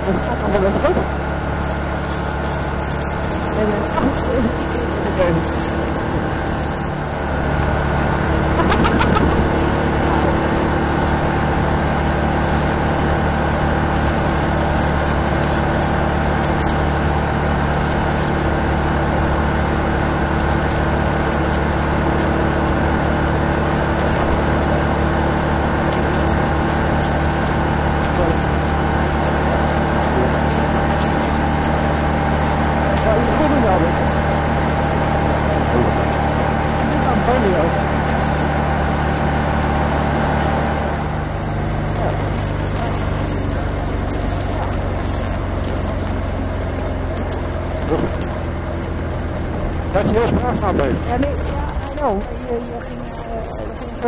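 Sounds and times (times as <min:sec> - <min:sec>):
motorcycle engine cruising: 0:00.0 - 0:54.0
riding noise: 0:00.0 - 0:54.0.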